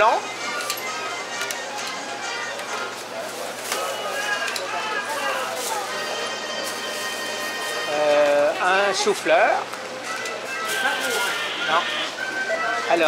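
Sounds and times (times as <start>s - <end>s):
background music: 0.0s - 13.0s
chatter of voices: 0.6s - 13.0s
clicks and knocks of groceries: 2.6s - 6.0s.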